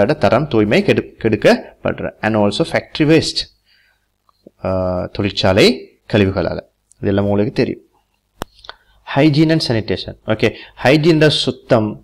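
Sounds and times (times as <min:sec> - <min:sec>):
person speaking: 0:00.0 - 0:03.6, 0:04.3 - 0:12.0.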